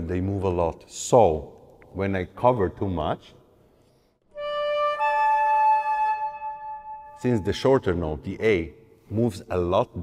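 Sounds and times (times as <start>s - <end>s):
flute holding a note: 4.4s - 7.5s.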